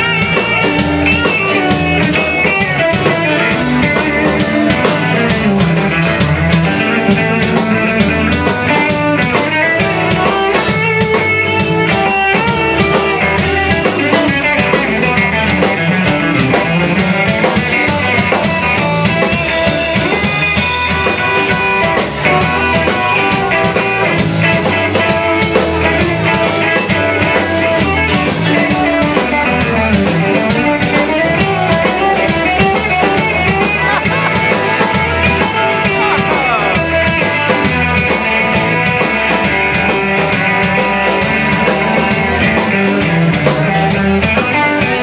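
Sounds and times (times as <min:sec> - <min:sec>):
drum kit beat: 0:00.0 - 0:45.0
electric guitar: 0:00.0 - 0:45.0.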